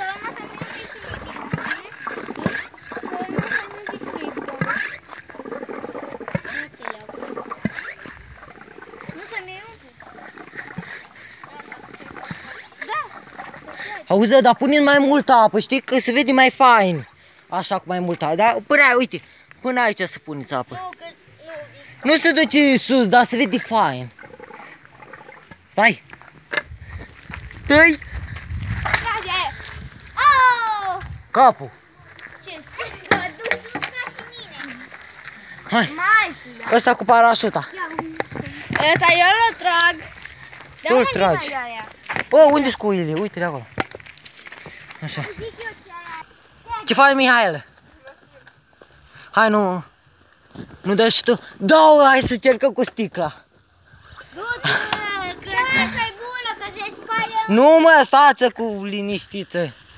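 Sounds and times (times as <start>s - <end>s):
children's voices and squeals: 0.0s - 14.1s, 28.8s - 31.2s, 31.9s - 35.0s, 35.7s - 36.7s, 45.1s - 47.0s, 54.0s - 57.8s
air pump hissing strokes: 0.6s - 9.5s, 10.1s - 13.4s
excited voices shouting: 29.0s - 31.1s, 54.3s - 57.5s.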